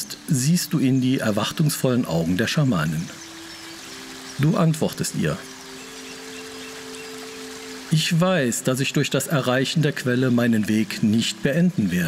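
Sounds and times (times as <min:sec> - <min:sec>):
sustained synth pad chord: 0:00.0 - 0:11.8
faint hiss: 0:00.0 - 0:12.0.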